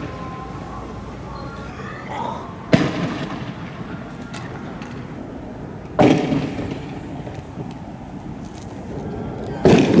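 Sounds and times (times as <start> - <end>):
loud blast bangs: 2.7 - 4.0, 6.0 - 7.2, 9.6 - 10.0.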